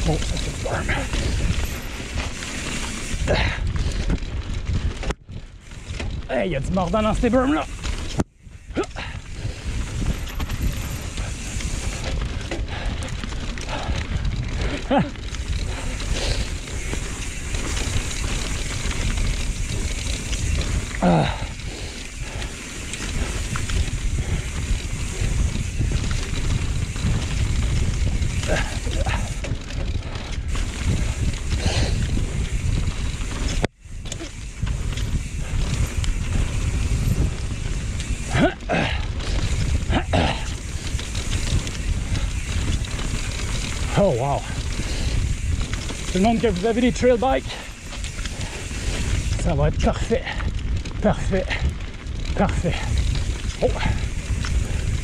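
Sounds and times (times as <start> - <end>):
bike tyres rolling on dirt: 0.0 - 55.0
wind buffeting microphone: 0.0 - 55.0.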